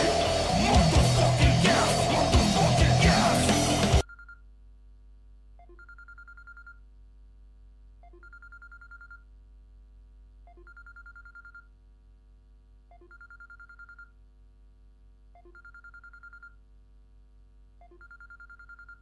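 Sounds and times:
electronic telephone ring: 15.4s - 16.6s, 17.8s - 19.0s.

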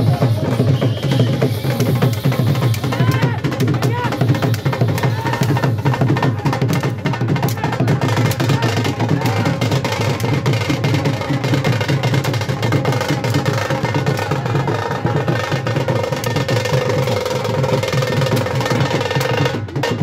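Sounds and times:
fast drum roll: 0.0s - 20.0s.

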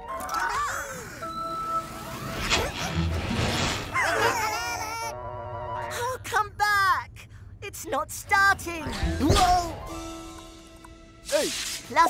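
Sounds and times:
light background music: 8.7s - 12.0s.

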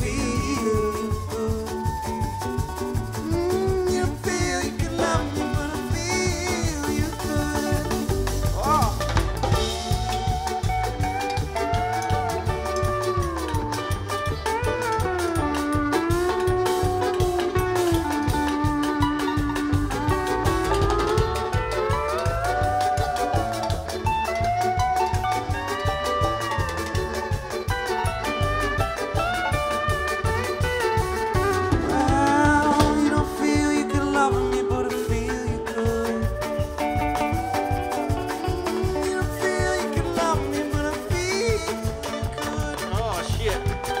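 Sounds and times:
live band instrumental: 0.0s - 44.0s
sliding lead melody: 0.0s - 44.0s.

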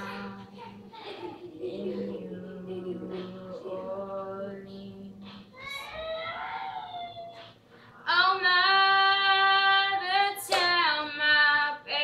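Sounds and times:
girl singing unaccompanied: 0.0s - 12.0s.

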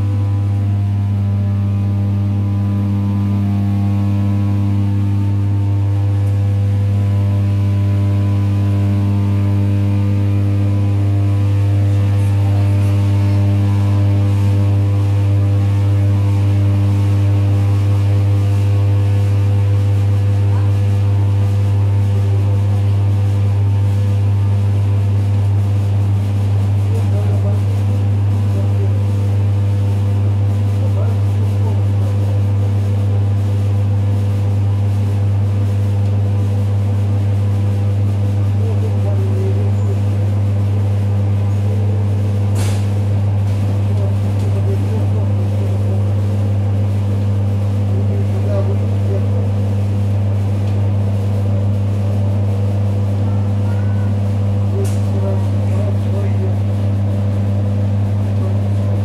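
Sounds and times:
loud low electrical hum: 0.0s - 59.0s
sharp click: 42.5s - 42.9s, 54.8s - 55.1s.

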